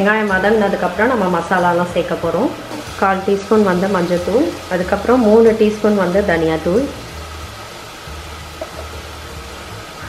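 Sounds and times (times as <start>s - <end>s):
onions sizzling in oil: 0.0s - 10.0s.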